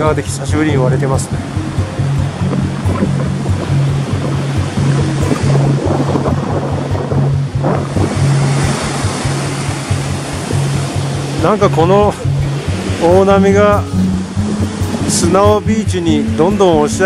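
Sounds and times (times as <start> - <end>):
music with repeating bass line: 0.0 - 17.0
surf breaking on beach: 0.0 - 17.0.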